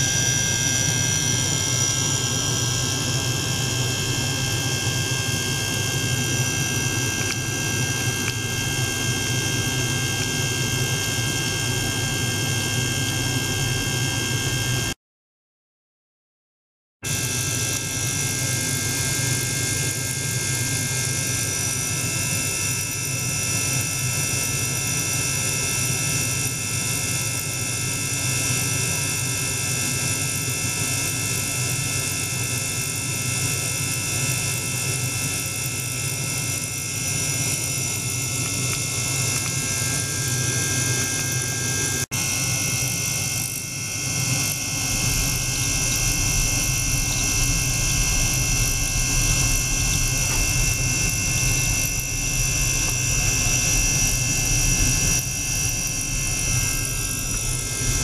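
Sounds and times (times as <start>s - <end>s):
ultrasonic cleaner hiss and whine: 0.0s - 14.9s, 17.1s - 58.0s.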